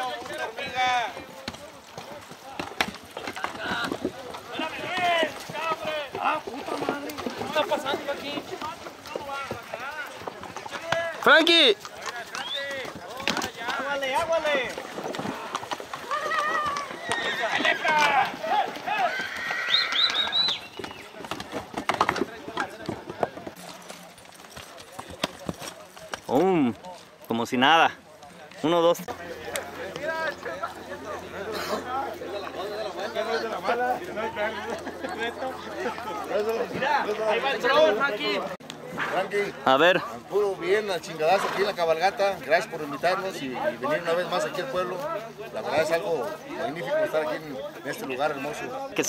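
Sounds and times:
horse hoofbeats on dirt: 0.0 - 49.0
people talking and calling out: 0.0 - 49.0.

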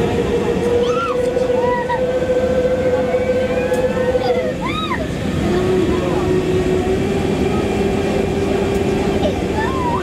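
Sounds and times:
droning machinery hum: 0.0 - 10.0.

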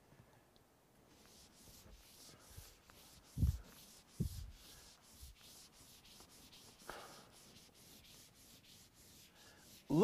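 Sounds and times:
eraser rubbing on whiteboard: 1.1 - 10.0.

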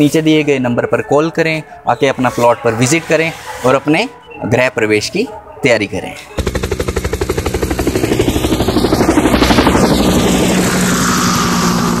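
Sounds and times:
low hum: 6.4 - 12.0
rapid fluttering pulse: 6.4 - 12.0
whoosh: 7.6 - 12.0.

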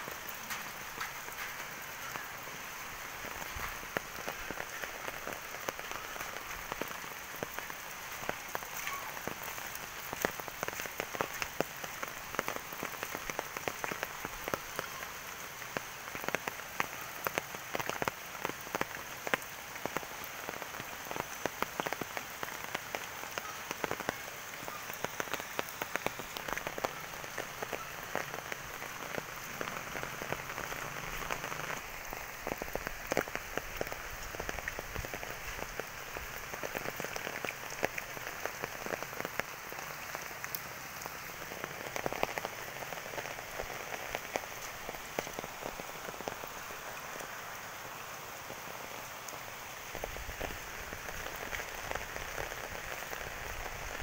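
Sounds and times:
heavy rain falling: 0.0 - 54.0.

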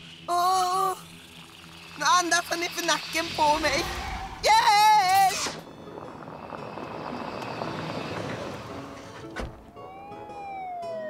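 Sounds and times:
car engine approaching: 5.6 - 11.0.

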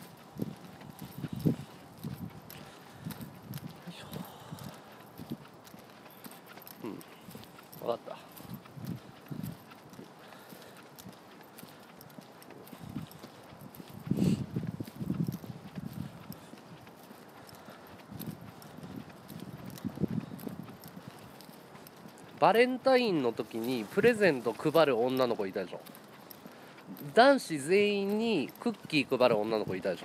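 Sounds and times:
quiet indistinct voice: 3.8 - 4.8.

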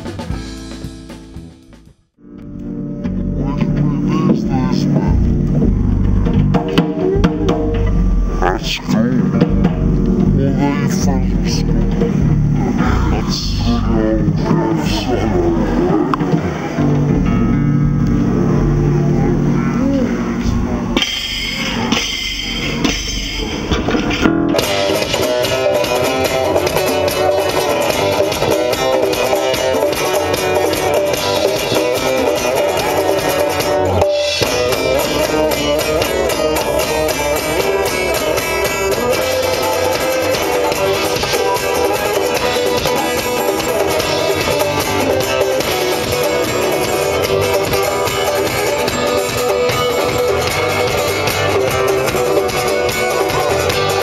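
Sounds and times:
funk band playing: 0.0 - 54.0.

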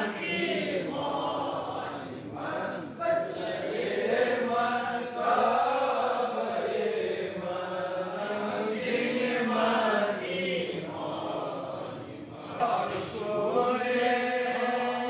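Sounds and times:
men chanting together: 0.0 - 15.0.

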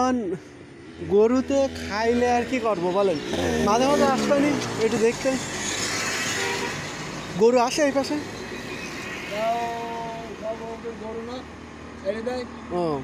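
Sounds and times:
vehicle passing: 1.0 - 13.0.

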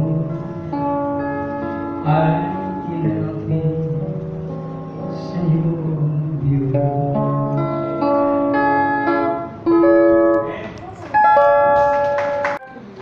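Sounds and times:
man singing: 0.0 - 0.7, 2.0 - 4.2, 5.0 - 7.6
guitar accompaniment: 0.0 - 13.0.

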